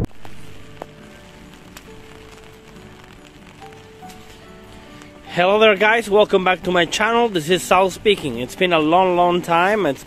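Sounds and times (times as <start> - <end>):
rain falling on an umbrella: 0.0 - 10.0
soft background music: 0.1 - 10.0.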